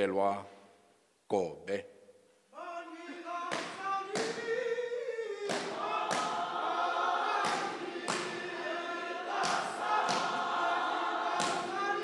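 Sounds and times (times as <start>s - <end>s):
congregation singing a hymn: 2.6s - 12.0s.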